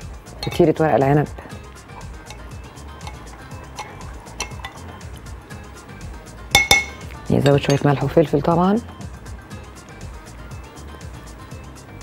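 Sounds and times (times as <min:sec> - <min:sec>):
spoon clinking on glass: 0:00.4 - 0:00.8, 0:02.2 - 0:05.1, 0:06.5 - 0:08.1
spoon stirring sauce: 0:00.4 - 0:05.8, 0:06.5 - 0:08.1.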